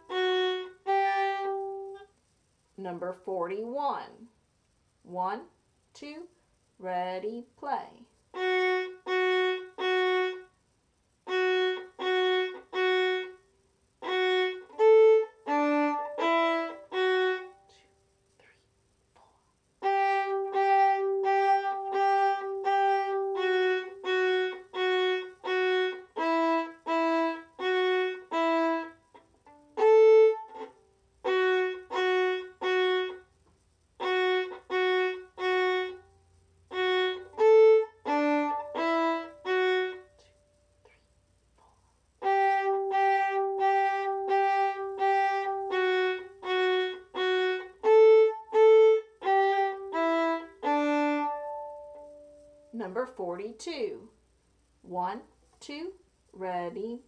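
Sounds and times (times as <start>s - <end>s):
solo violin melody: 0.0s - 2.1s, 8.2s - 10.6s, 11.2s - 17.8s, 19.8s - 40.4s, 42.2s - 52.8s.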